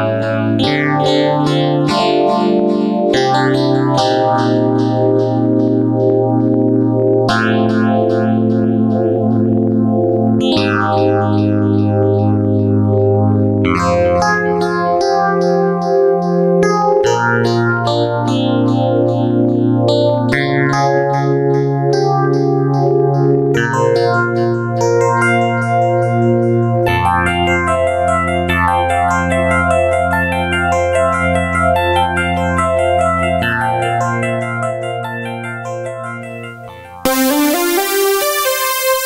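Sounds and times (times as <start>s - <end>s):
synthesizer chord with bass note: 0.0s - 16.6s, 32.7s - 39.0s
bright synth pulses: 36.6s - 39.0s.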